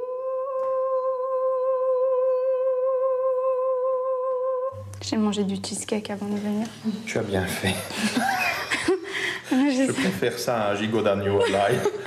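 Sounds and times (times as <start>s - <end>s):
person singing a long note: 0.0s - 4.9s.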